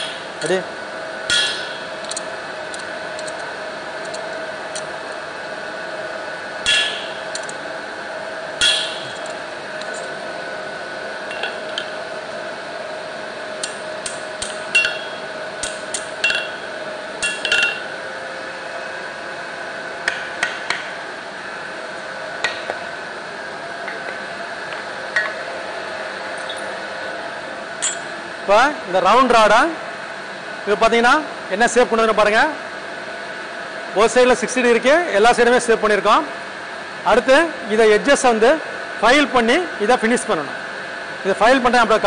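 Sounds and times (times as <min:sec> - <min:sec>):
hammer striking steel on anvil: 0:00.0 - 0:00.4, 0:01.3 - 0:02.0, 0:06.6 - 0:07.4, 0:08.6 - 0:09.3, 0:14.1 - 0:17.9
steady background hum: 0:00.0 - 0:42.0.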